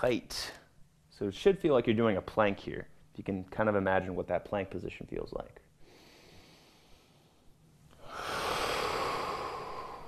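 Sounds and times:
man breathing slowly: 0:05.8 - 0:10.0.

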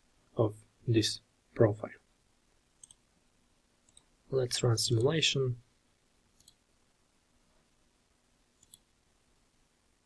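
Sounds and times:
computer mouse clicks: 0:02.8 - 0:03.0, 0:03.8 - 0:04.1, 0:06.4 - 0:06.6, 0:08.6 - 0:08.9.

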